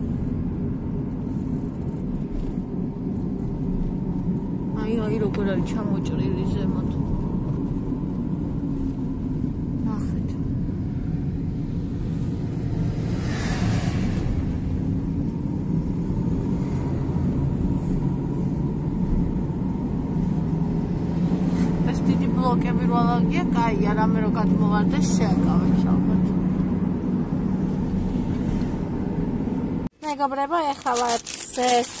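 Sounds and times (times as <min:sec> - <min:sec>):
car road and engine rumble: 0:00.0 - 0:32.0
rush of noise: 0:11.7 - 0:18.4.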